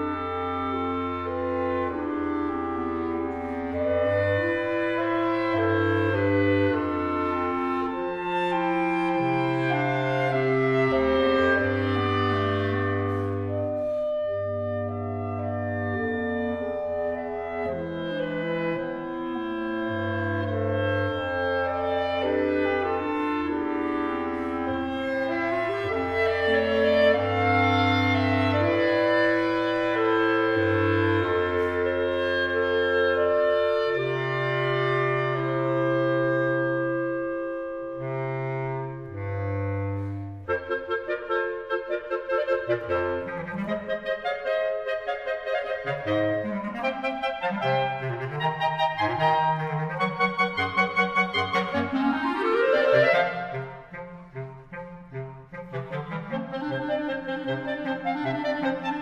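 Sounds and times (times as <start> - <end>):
clarinet quartet playing in harmony: 0.0 - 59.0.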